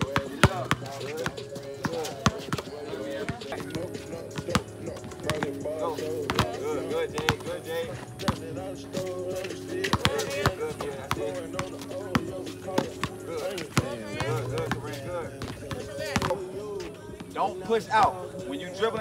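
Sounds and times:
basketballs bouncing on court: 0.0 - 7.6, 8.2 - 17.8
background music: 0.0 - 19.0.

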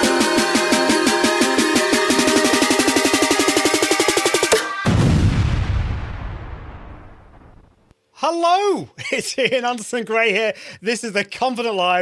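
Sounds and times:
deep cinematic boom hit: 4.8 - 7.8.

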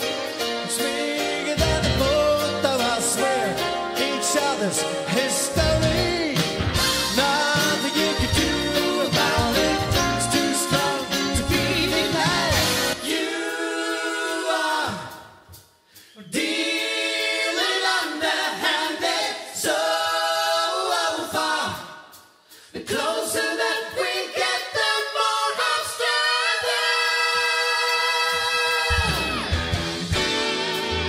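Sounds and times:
men singing a cappella harmony: 0.4 - 15.4, 16.2 - 22.1, 22.7 - 29.1.

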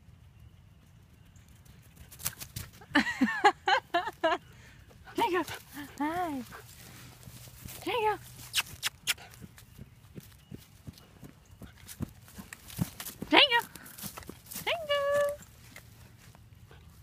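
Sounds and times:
person laughing: 2.9 - 4.4
puppy scuffling on grass: 5.1 - 17.0.

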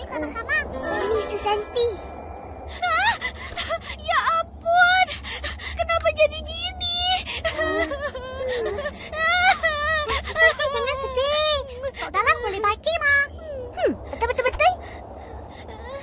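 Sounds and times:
girl whimpering and speaking tearfully: 2.7 - 16.0.

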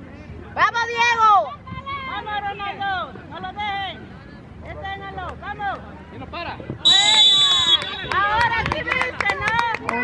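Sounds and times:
referee's whistle blast: 6.8 - 8.1.

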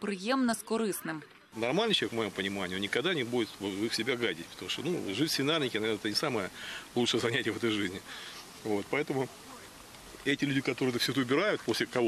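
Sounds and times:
man speaking: 1.6 - 12.0.

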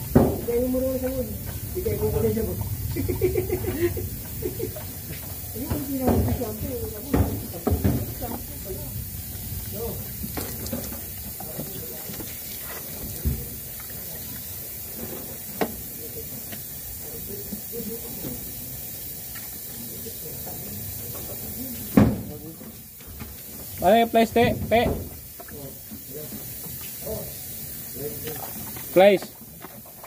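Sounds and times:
gas hissing through hose: 0.0 - 29.4.

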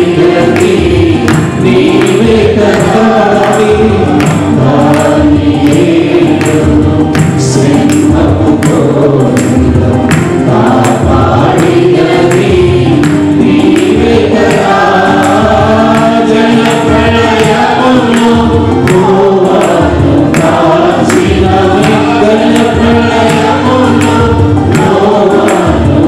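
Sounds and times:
instrumental backing: 0.0 - 26.0
mixed choir singing: 0.0 - 26.0
steady percussion beat: 0.0 - 26.0.

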